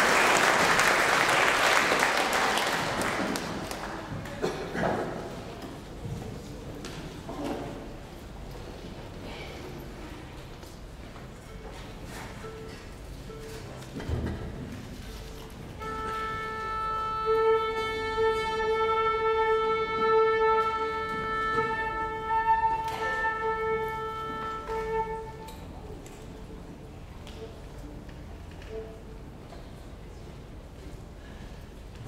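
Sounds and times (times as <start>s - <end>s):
orchestra tuning steady note: 15.7s - 25.9s.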